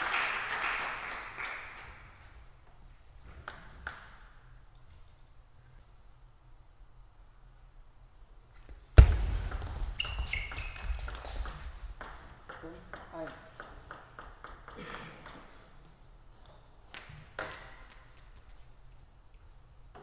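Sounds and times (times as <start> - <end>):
table tennis ball hit: 9.0 - 15.5
ball bouncing and clicking: 9.0 - 15.6.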